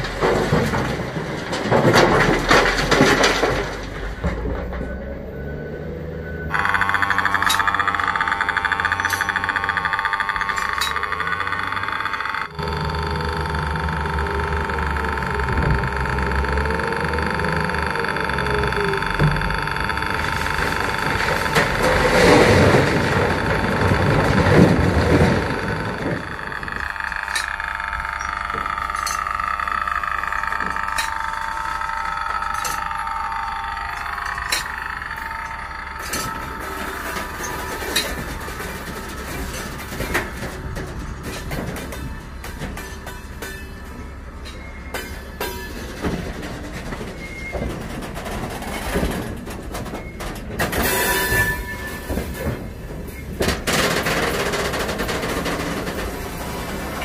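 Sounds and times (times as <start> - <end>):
wheel loader engine and hydraulics whine: 0.0 - 57.0.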